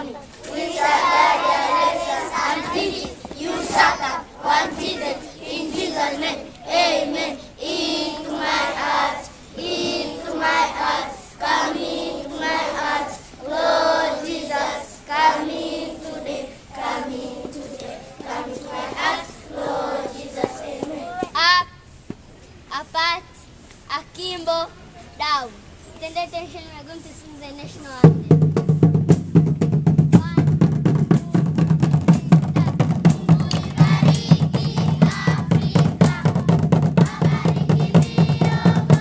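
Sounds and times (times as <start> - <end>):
children singing in unison: 0.0 - 21.3, 32.1 - 39.0.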